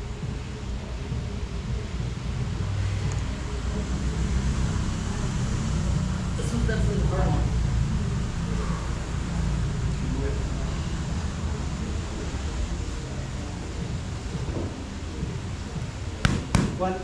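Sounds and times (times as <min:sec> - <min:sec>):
low background rumble: 0:00.0 - 0:17.0
boxing gloves smacking mitts: 0:16.2 - 0:16.9.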